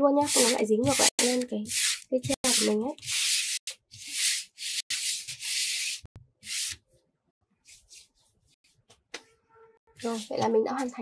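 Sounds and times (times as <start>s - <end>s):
hand brushing across a surface: 7.6s - 8.8s, 10.0s - 10.5s.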